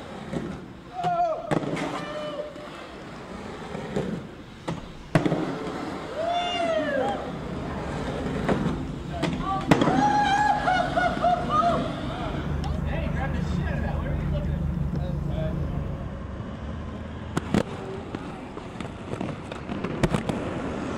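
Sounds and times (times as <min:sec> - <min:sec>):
skates clacking on ground: 0:00.0 - 0:10.4, 0:17.3 - 0:20.9
skate wheels rolling on pavement: 0:00.0 - 0:20.9
people shouting exclamations: 0:06.2 - 0:07.3, 0:09.2 - 0:12.5.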